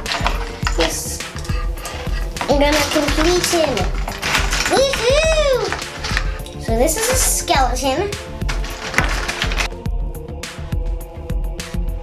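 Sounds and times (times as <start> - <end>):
plastic pieces clicking together: 0.0 - 7.5, 8.4 - 9.7
light background music: 0.0 - 12.0.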